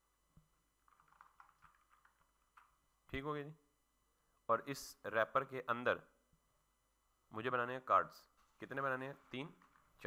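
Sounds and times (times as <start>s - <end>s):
computer keyboard typing: 0.8s - 2.8s.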